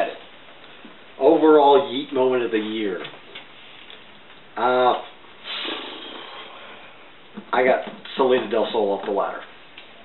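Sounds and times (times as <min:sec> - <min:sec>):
person breathy exhale: 0:05.4 - 0:07.0.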